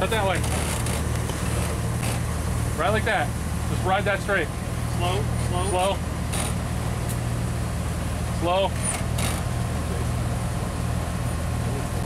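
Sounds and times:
engine running low: 0:00.0 - 0:12.0.

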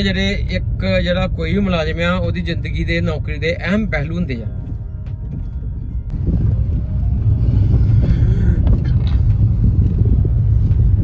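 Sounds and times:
car interior road and engine rumble: 0:00.0 - 0:11.0.

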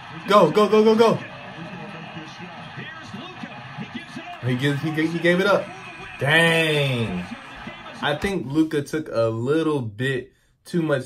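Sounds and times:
arena crowd noise on tv: 0:00.0 - 0:09.4.

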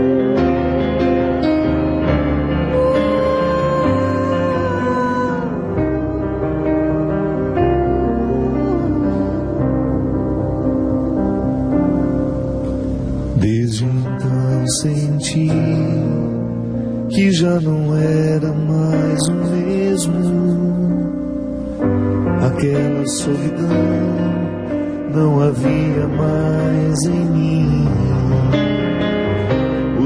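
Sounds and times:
guitar accompaniment: 0:00.0 - 0:13.7
gentle instrumental accompaniment: 0:00.0 - 0:30.0
man singing into a microphone: 0:02.7 - 0:06.1, 0:06.9 - 0:10.7, 0:13.3 - 0:21.4, 0:22.3 - 0:29.1.

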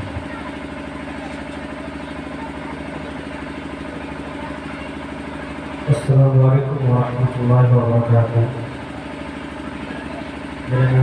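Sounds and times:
steady background noise: 0:00.0 - 0:11.0
man speaking into microphone: 0:05.8 - 0:08.8, 0:10.7 - 0:11.0.

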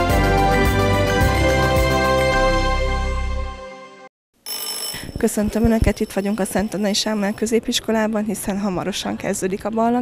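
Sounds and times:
electric bell ringing: 0:04.4 - 0:07.6.

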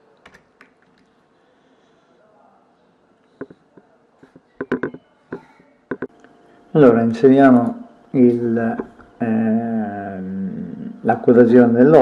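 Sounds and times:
faint room hiss: 0:00.0 - 0:12.0
computer mouse clicks: 0:00.2 - 0:01.1.

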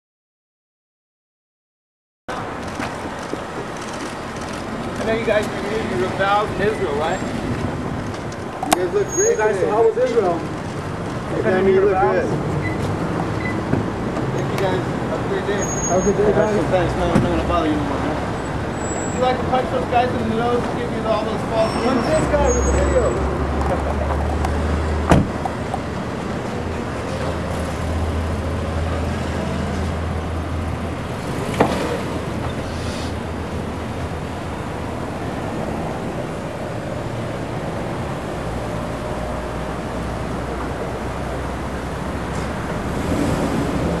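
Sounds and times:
street and car noise: 0:02.3 - 0:44.0
car doors shutting: 0:25.0 - 0:25.9.

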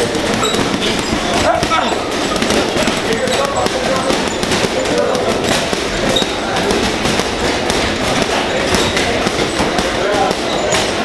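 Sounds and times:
punches thudding on punching bag: 0:00.0 - 0:11.0.

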